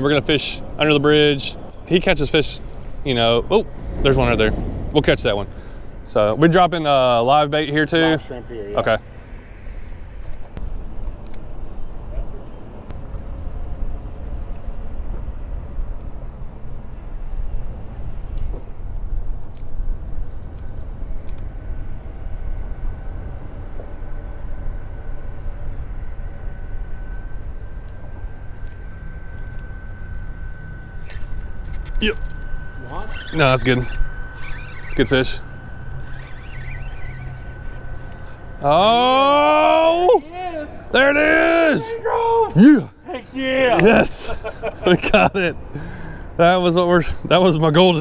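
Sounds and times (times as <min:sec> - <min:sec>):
faint steady whine: 0:00.0 - 0:48.0
traffic rumble overhead: 0:00.0 - 0:48.0.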